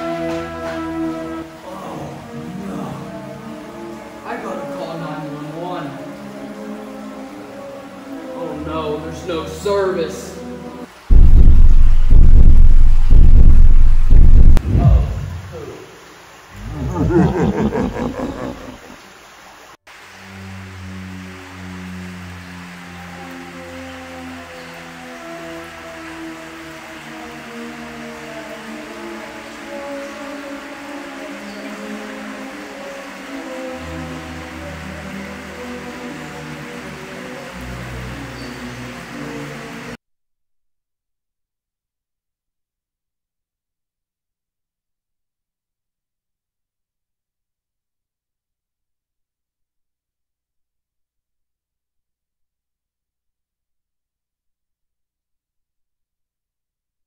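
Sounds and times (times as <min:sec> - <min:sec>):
slow music of long held notes: 0:00.0 - 0:10.9, 0:20.0 - 0:40.0
loud roars: 0:14.6 - 0:15.6, 0:16.6 - 0:18.9.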